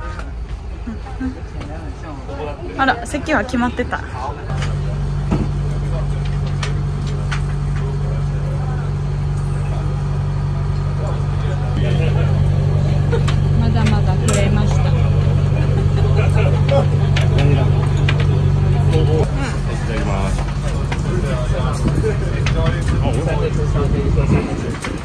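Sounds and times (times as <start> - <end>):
boat engine low hum: 4.1 - 25.0.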